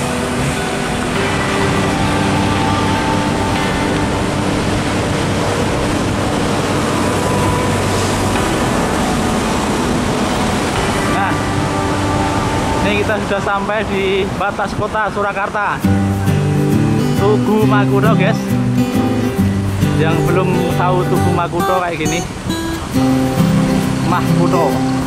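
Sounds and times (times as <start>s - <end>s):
passing engines humming: 0.0s - 25.0s
road traffic noise: 0.0s - 25.0s
wind rushing over microphone: 0.0s - 25.0s.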